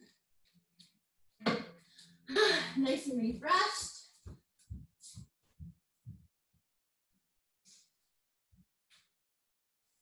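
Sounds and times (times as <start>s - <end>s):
woman speaking: 2.4s - 4.2s.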